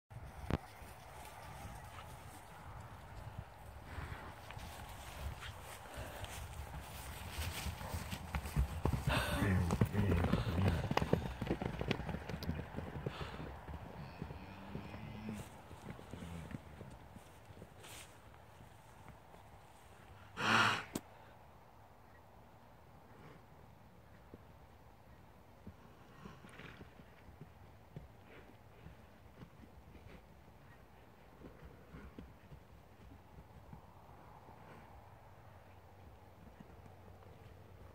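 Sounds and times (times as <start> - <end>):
hooves galloping on turf: 0.1 - 20.2, 25.2 - 37.9
hoofbeats on grass: 0.1 - 20.3, 25.2 - 37.9
horse breathy noise: 3.8 - 11.5, 12.8 - 13.8, 20.2 - 21.3.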